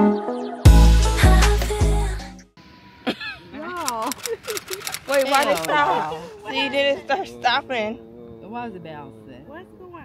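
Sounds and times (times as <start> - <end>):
people talking: 3.5 - 10.0
sharp clicks: 3.7 - 5.7.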